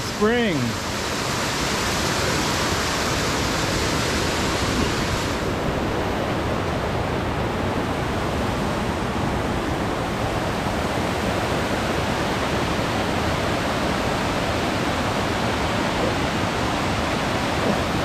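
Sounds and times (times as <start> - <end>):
creek rushing over rocks: 0.0 - 18.0.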